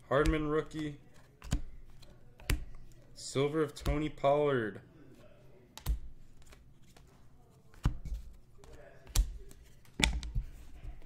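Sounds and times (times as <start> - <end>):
trading cards handled and flicked: 0.2 - 3.0, 5.7 - 11.0.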